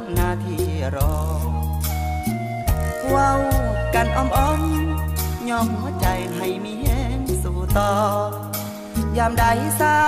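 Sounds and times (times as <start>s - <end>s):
man singing: 0.0s - 2.0s, 3.0s - 10.0s
band with bass and drums: 0.0s - 10.0s.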